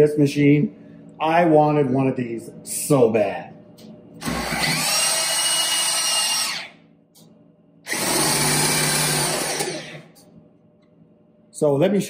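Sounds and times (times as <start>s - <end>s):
electric drill motor whining: 4.2s - 6.8s, 7.9s - 10.2s.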